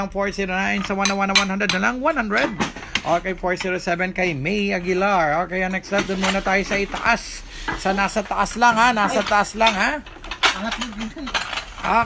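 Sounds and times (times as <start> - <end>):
ceramic dishes clinking: 0.7 - 1.9, 7.7 - 12.0.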